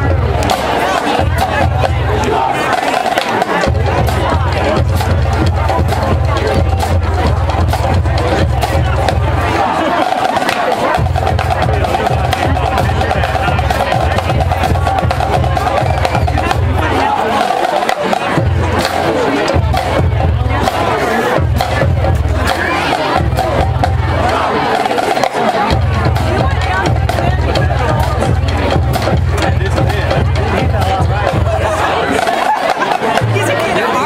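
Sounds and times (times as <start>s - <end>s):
bass drums: 0.0s - 34.0s
marching band music: 0.0s - 34.0s
tenor drums: 0.0s - 34.0s.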